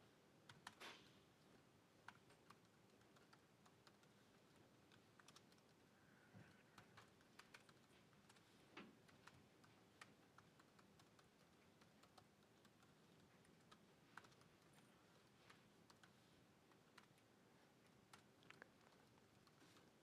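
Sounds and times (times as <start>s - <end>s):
laptop keys clicking: 0.4s - 0.8s, 2.0s - 5.8s, 6.4s - 16.2s.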